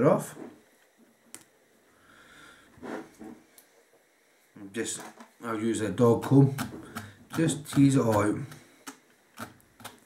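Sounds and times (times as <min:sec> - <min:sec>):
person breathing: 0:01.9 - 0:03.4, 0:06.5 - 0:07.3, 0:08.4 - 0:09.1.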